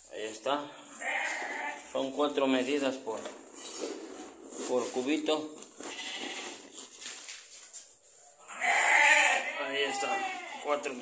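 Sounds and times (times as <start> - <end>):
paper sack rustling: 2.2 - 8.2.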